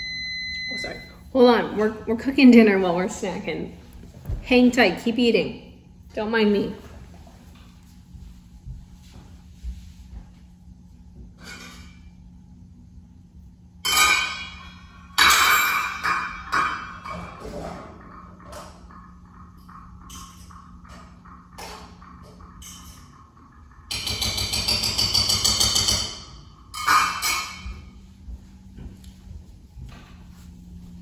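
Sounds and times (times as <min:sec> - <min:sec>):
steady low hum: 0:00.0 - 0:31.0
cookware and dishes clattering: 0:13.8 - 0:28.0.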